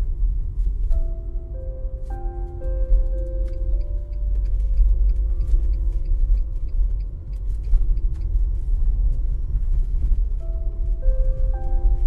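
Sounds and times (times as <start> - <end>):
soft held music tone: 0.0 - 12.0
train rumbling: 0.0 - 12.0.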